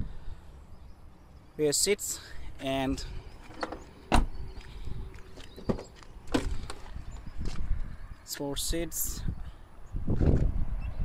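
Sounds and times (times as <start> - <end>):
car door shutting with a thud: 3.6 - 4.4.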